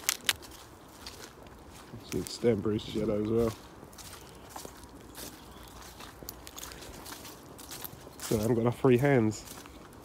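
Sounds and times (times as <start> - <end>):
footsteps on leaf litter: 0.0 - 10.0.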